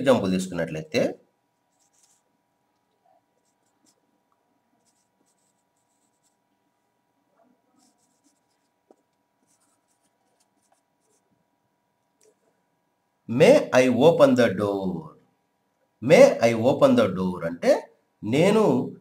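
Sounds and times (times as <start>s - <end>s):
marker scratching on whiteboard: 1.7s - 2.3s, 4.8s - 6.4s, 7.7s - 11.3s.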